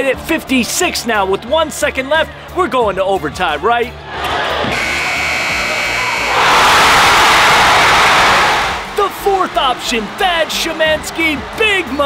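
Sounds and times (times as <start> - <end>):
gym crowd noise: 3.8 - 12.0
crowd cheering: 4.1 - 12.0
electronic buzzer horn: 4.7 - 6.5.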